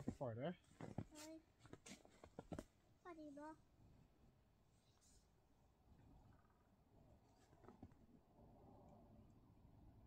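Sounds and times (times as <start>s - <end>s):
child saying a word: 3.0s - 3.6s.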